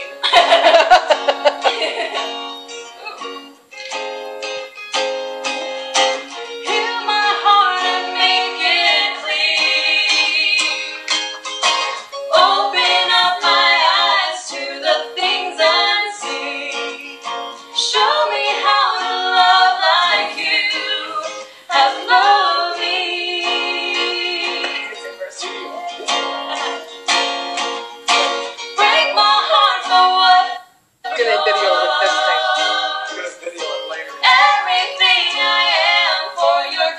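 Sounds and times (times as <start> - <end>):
strummed acoustic guitar: 0.0 - 36.5
woman singing: 6.6 - 11.0, 12.2 - 17.2, 17.8 - 27.0, 28.1 - 33.2, 34.1 - 36.9.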